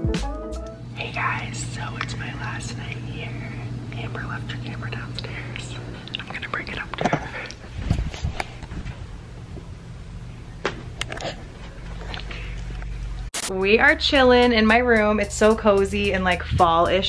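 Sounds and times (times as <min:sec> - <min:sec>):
steady low hum: 0:00.6 - 0:17.0
man whispering: 0:04.0 - 0:07.5.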